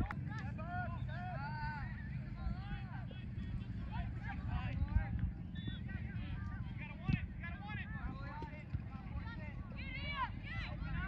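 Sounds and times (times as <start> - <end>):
wind rumble on microphone: 0.0 - 0.6, 1.7 - 11.0.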